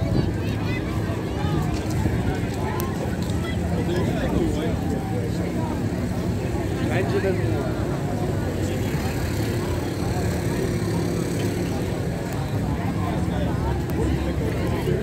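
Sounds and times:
crowd talking: 0.0s - 15.0s.

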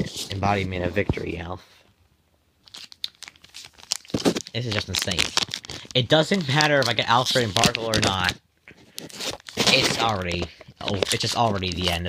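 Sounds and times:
foil wrapper crinkling: 2.6s - 12.0s.

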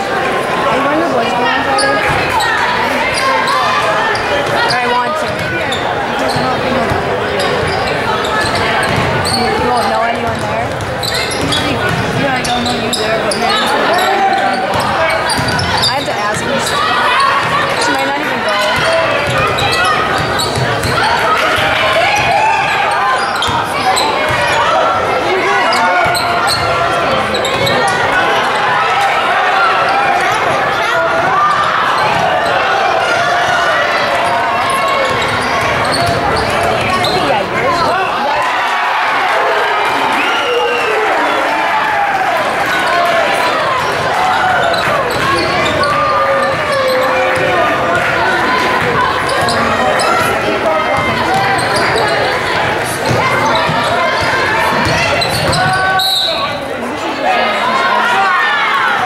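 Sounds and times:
voices calling out: 0.0s - 59.0s.

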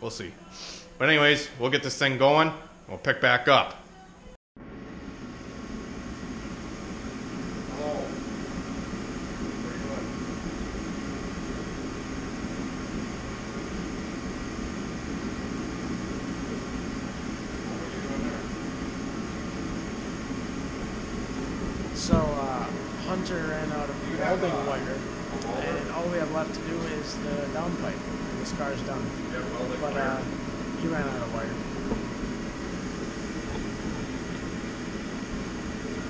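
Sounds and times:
steady mechanical hum: 0.0s - 36.0s.

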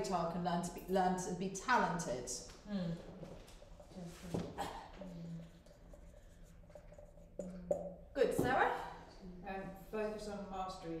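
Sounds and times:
marker pen scratching on whiteboard: 5.0s - 7.9s.

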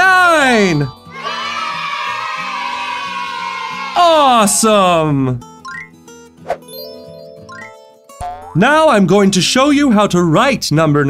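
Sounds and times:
children shouting together: 1.1s - 4.2s
light background music: 5.5s - 10.3s.

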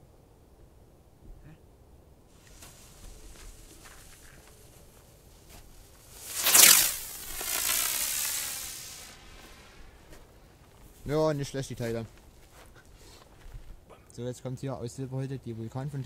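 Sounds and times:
firework whoosh and hiss: 2.3s - 10.2s
firework fuse fizzing: 2.3s - 10.3s.

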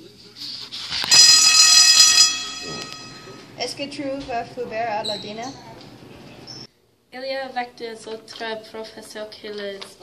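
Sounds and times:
bell ringing: 1.1s - 3.5s.

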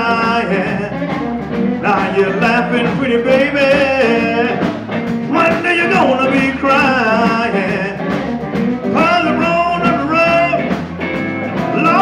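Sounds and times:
bending guitar melody: 0.0s - 12.0s
electric blues band playing: 0.0s - 12.0s.

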